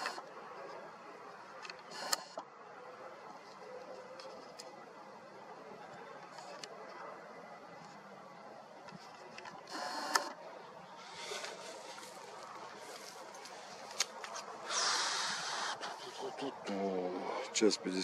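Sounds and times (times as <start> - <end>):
faint outdoor hiss: 0.0 - 18.0.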